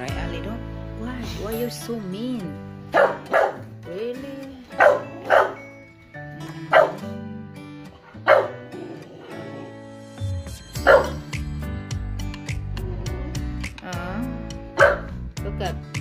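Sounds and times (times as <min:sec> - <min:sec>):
background music: 0:00.0 - 0:16.0
dog barking: 0:02.9 - 0:03.7, 0:04.8 - 0:05.6, 0:06.7 - 0:07.0, 0:08.1 - 0:08.7, 0:10.8 - 0:11.2, 0:14.8 - 0:15.2.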